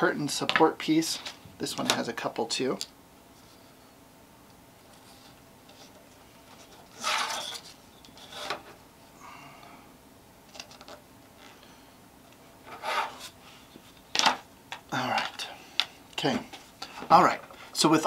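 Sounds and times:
paper rustling and scraping: 5.0s - 8.8s, 12.6s - 13.9s.

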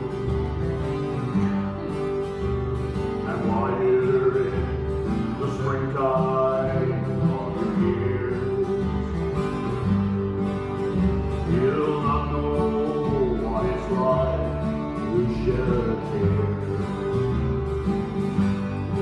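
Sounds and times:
acoustic guitars strumming: 0.0s - 19.0s.

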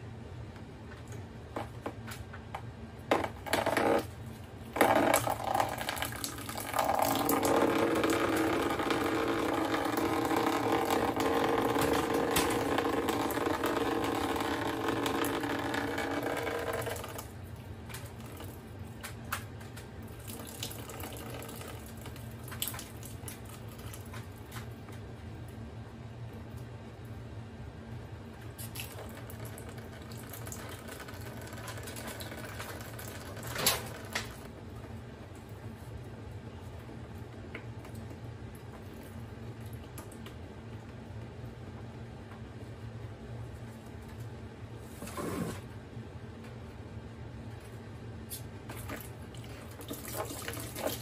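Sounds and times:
air conditioner humming: 0.0s - 51.0s.

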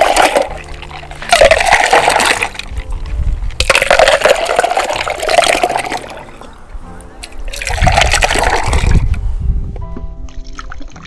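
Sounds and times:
liquid pouring and splashing: 0.0s - 6.4s, 7.5s - 9.1s, 10.4s - 11.0s.

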